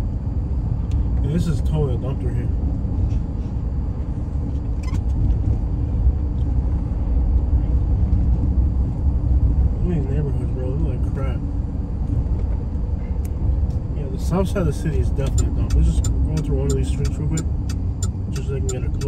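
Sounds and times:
road and engine rumble in vehicle: 0.0s - 19.0s.

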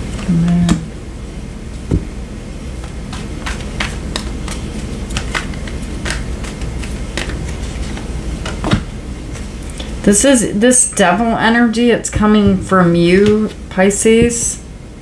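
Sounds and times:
steady low hum: 0.0s - 15.0s
cards clicking and tapping: 3.1s - 8.8s.

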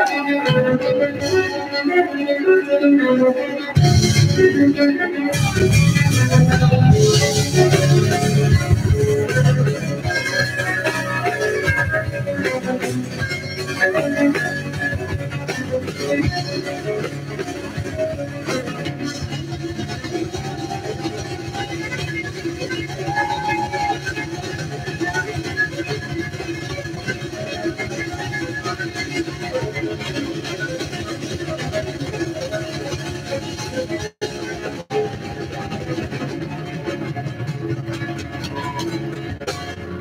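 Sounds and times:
live band playing: 0.0s - 40.0s.

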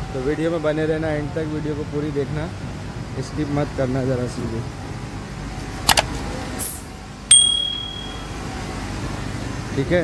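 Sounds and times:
bright bell ding: 7.3s - 8.5s.

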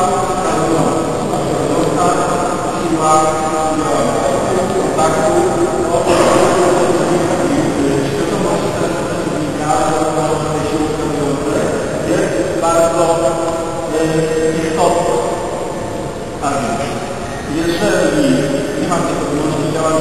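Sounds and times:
man's voice echoing: 0.0s - 20.0s
room background noise: 0.0s - 20.0s.

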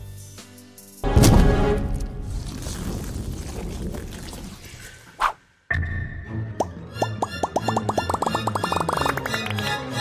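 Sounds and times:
rising plop effects: 6.5s - 9.6s.

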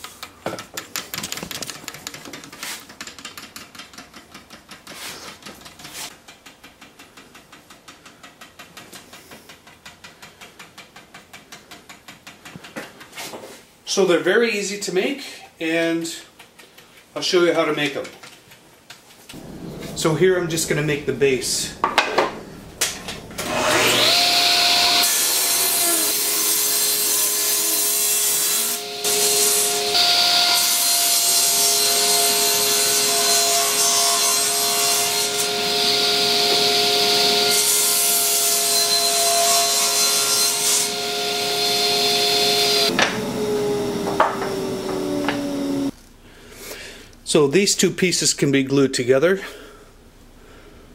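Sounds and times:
table saw motor humming: 23.2s - 33.6s, 34.2s - 45.9s
saw cutting wooden board: 23.4s - 45.9s.

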